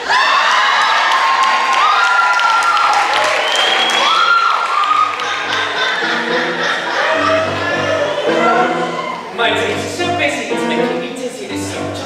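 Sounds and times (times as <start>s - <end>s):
high whoops: 0.0s - 5.3s, 7.2s - 9.3s
audience applause and cheering: 0.0s - 9.5s
low piano notes: 5.3s - 12.0s.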